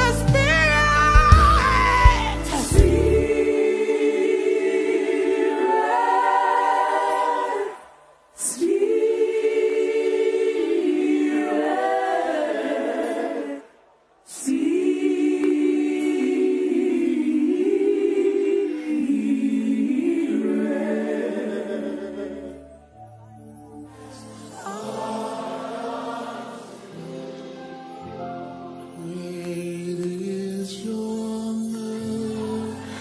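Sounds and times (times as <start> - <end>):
choir singing unaccompanied: 1.0 - 22.8, 24.0 - 29.1.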